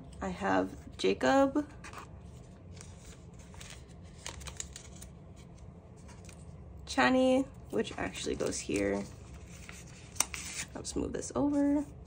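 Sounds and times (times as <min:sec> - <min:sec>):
plastic sleeve rustling: 0:01.8 - 0:06.6.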